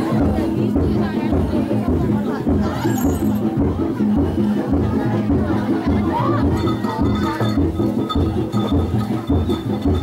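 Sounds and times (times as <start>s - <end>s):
fast low drum beat: 0.0s - 10.0s.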